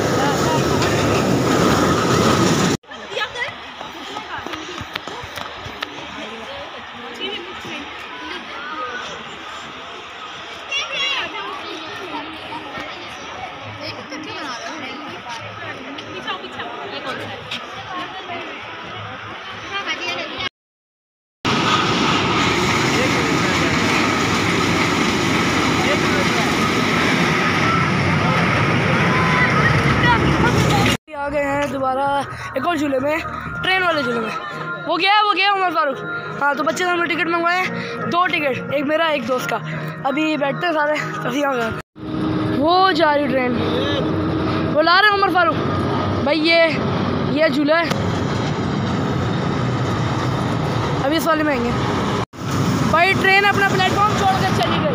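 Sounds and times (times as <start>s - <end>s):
miniature train rumbling: 0.0s - 5.2s, 21.5s - 31.0s
ride train rumbling on steel track: 0.0s - 17.9s, 21.5s - 32.6s, 41.6s - 54.9s
faint children's voices: 2.9s - 20.5s, 25.8s - 37.7s.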